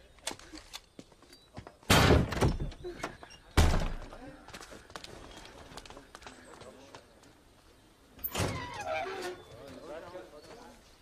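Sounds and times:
door slamming: 1.9 - 2.8, 3.6 - 4.1, 8.3 - 9.0.

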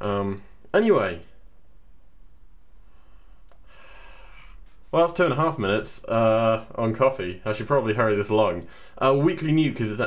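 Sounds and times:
room hum: 0.0 - 10.0
man breathing: 2.8 - 4.9, 8.7 - 9.0
faint click: 3.4 - 3.7.

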